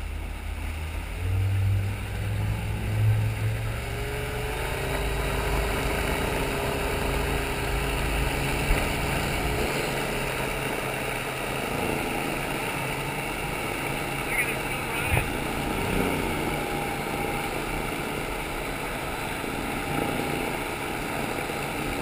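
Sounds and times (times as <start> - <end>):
boat motor running: 0.0 - 22.0
water rushing and spray: 0.0 - 22.0.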